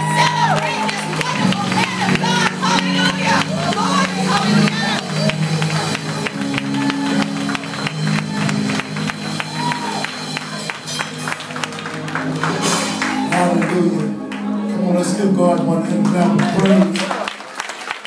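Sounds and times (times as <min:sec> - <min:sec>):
sustained keyboard chords: 0:00.0 - 0:17.1.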